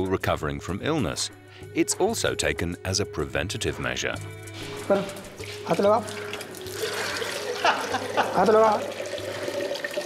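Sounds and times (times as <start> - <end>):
urine splashing into steel cup: 5.4 - 10.0.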